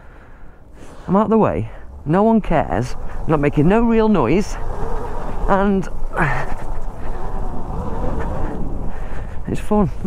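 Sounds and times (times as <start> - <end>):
tyres on the ground: 0.6 - 10.0
wind on microphone: 1.8 - 10.0.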